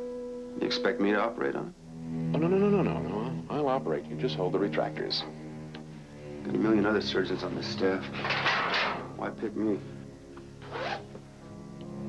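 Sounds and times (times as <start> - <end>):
soft background score music: 0.0 - 12.0
zipper rasp: 10.6 - 11.1.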